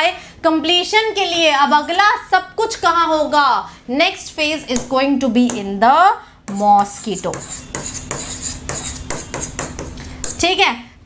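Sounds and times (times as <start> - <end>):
chalk writing on blackboard: 6.5 - 10.5.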